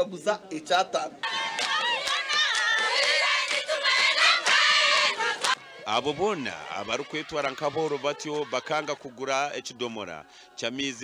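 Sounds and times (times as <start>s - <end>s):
crowd of women cheering: 1.2s - 5.8s.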